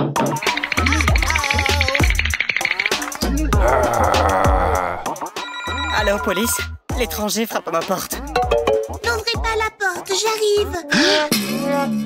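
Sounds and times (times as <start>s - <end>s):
upbeat background music: 0.0s - 11.2s
electronic phone ringing: 5.4s - 6.6s.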